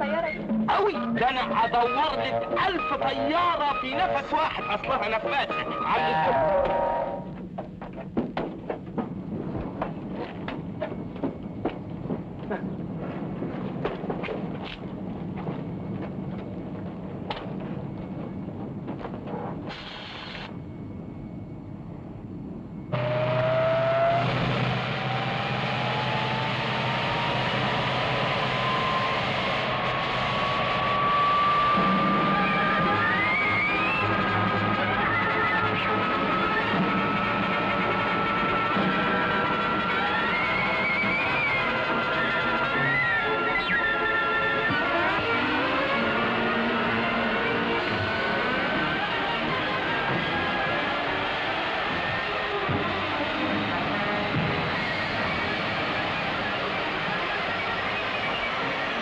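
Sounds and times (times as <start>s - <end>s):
music: 0.0s - 12.4s, 22.8s - 59.0s
jet engine rumble and whine: 0.0s - 59.0s.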